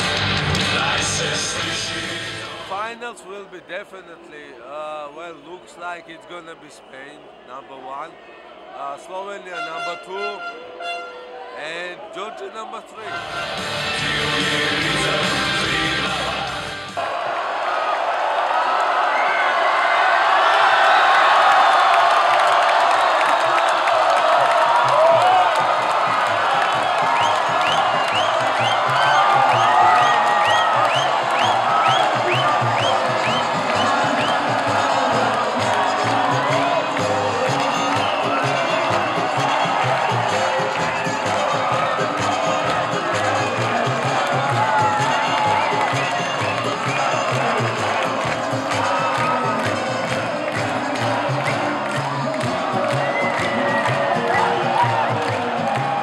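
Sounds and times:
music playing: 0:00.0 - 0:02.9, 0:13.0 - 0:17.0, 0:24.7 - 0:56.0
crowd cheering and shouting: 0:00.0 - 0:03.4, 0:05.5 - 0:56.0.

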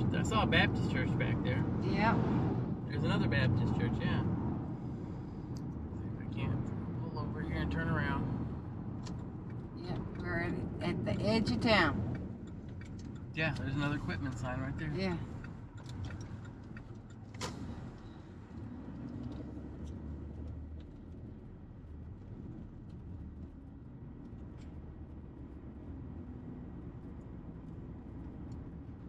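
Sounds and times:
car engine and tyres rumbling: 0:00.0 - 0:29.0.

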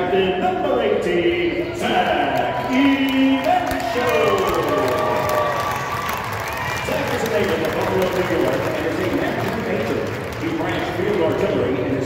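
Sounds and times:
crowd cheering and applauding: 0:01.8 - 0:12.0.

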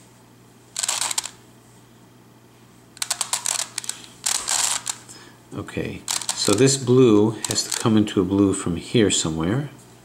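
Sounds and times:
puzzle clicking and rattling: 0:00.8 - 0:01.4, 0:03.0 - 0:05.1, 0:06.1 - 0:06.8, 0:07.4 - 0:07.9.

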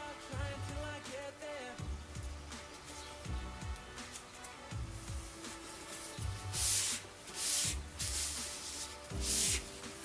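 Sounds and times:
quiet background music: 0:00.0 - 0:10.0
paper swishing on wood: 0:05.2 - 0:10.0.

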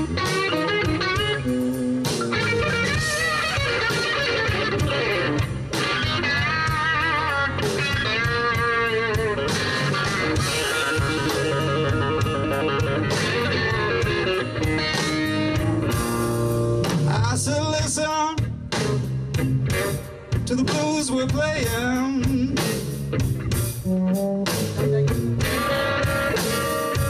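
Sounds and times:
band with drum kit: 0:00.0 - 0:27.0
electric blues guitar solo: 0:00.0 - 0:27.0.

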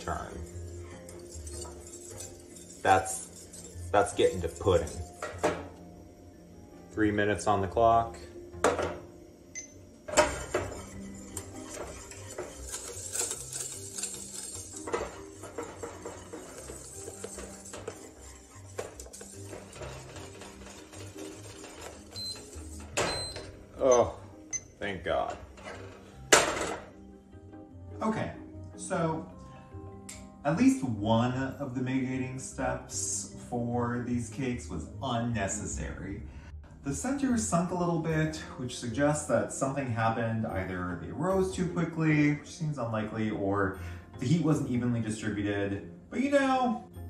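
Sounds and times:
whisk clinking against pan: 0:00.0 - 0:05.4, 0:10.2 - 0:23.3
wire whisk stirring paste: 0:00.0 - 0:05.4, 0:10.2 - 0:23.4
spoon scraping metal saucepan: 0:00.0 - 0:05.8, 0:10.1 - 0:23.6
soft background music: 0:00.0 - 0:47.0.

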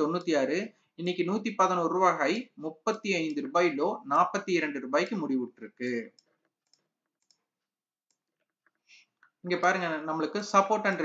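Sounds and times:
man talking: 0:00.0 - 0:06.2, 0:09.4 - 0:11.0
computer mouse clicks: 0:06.0 - 0:09.4.

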